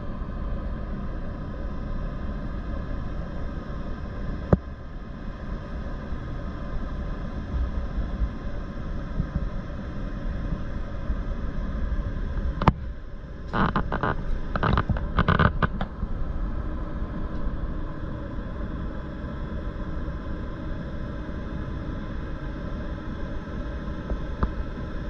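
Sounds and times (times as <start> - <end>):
wind rumble on microphone: 0.0 - 25.0.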